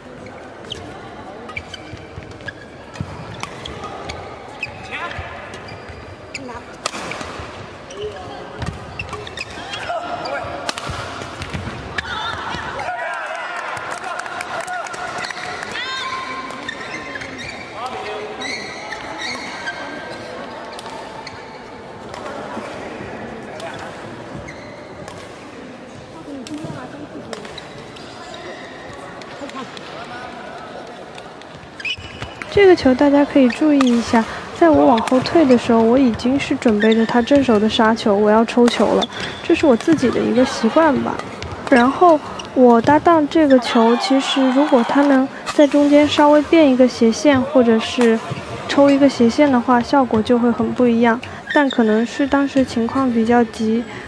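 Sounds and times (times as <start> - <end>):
people chattering: 0.0 - 54.0
rackets hitting shuttlecock: 6.8 - 12.8.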